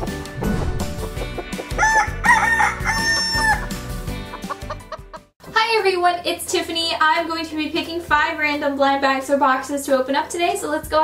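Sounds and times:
upbeat jingle: 0.3 - 2.6
rooster crowing: 1.7 - 3.8
chicken clucking: 4.3 - 5.2.

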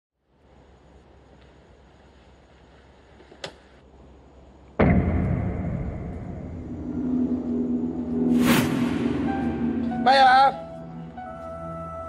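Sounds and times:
deep boom music stinger: 4.8 - 11.2
low tense music drone: 4.8 - 12.0.

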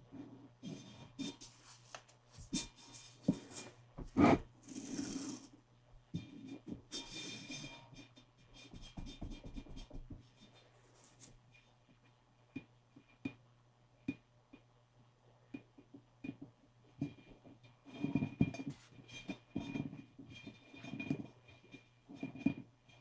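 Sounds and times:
taps and rubbing on plastic: 8.5 - 10.5.

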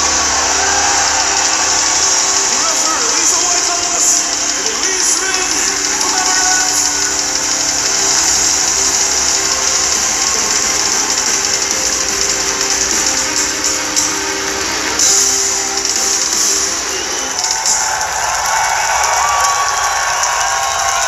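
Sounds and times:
cymbals wash: 0.0 - 21.0
live heavy metal band: 0.0 - 21.0.

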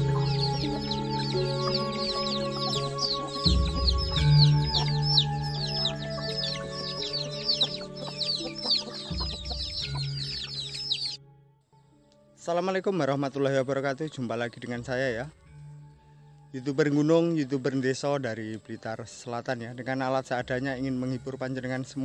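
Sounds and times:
chicks peeping: 0.0 - 11.2
background music with held notes: 0.0 - 22.0.

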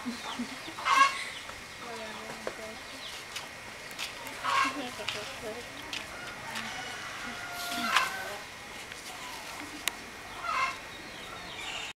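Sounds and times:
fowl calling: 0.7 - 1.3, 4.4 - 4.9, 6.2 - 8.4, 10.3 - 11.9.

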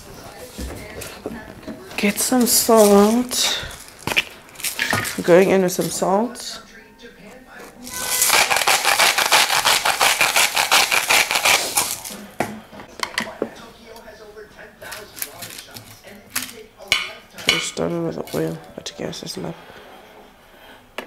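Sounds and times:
salt grinder crunching: 2.8 - 5.3, 7.9 - 12.2.

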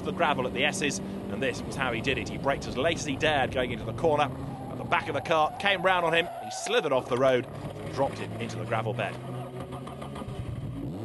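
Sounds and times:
race car engine running: 0.0 - 11.0.

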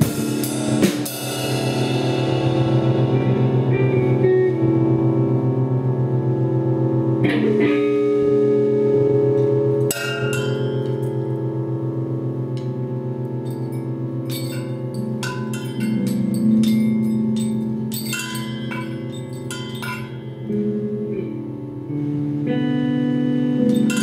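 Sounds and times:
bell-like percussion strikes: 9.9 - 11.3, 13.4 - 20.6, 23.7 - 24.0.

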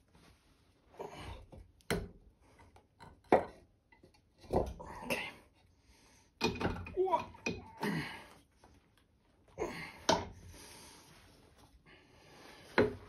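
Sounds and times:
metal knocks and clunks on wood: 6.4 - 7.7.

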